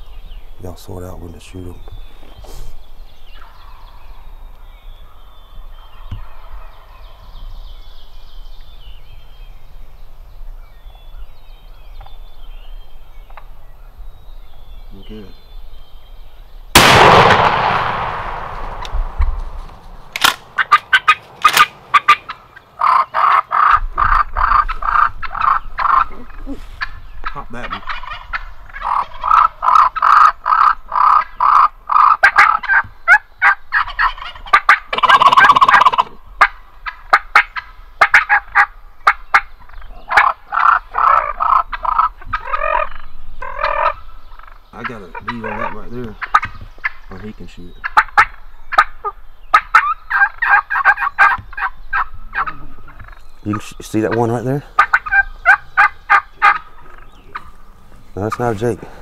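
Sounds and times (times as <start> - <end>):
turkeys gobbling: 20.2 - 59.0.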